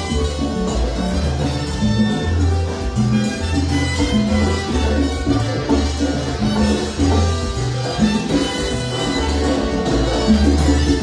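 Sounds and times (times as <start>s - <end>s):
bass line: 0.0s - 11.0s
keyboards: 0.0s - 11.0s
salsa band playing: 0.0s - 11.0s.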